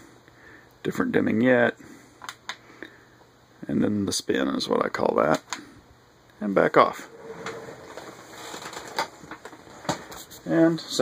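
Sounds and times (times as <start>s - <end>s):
faint handling rustle: 7.1s - 11.0s.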